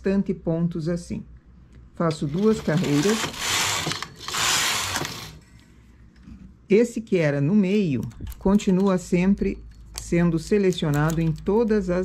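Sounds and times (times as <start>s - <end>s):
knitting machine carriage clattering: 2.3s - 5.4s.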